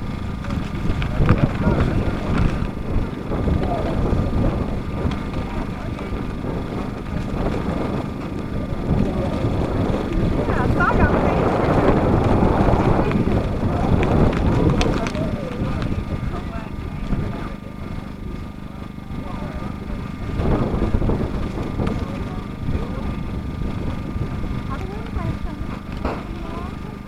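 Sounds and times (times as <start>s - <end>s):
wind buffeting microphone: 0.0s - 27.0s
people talking indistinctly: 0.4s - 27.0s.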